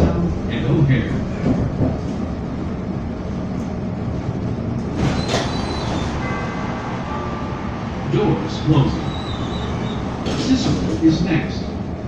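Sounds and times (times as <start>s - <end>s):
low rumble of train car: 0.0s - 12.0s.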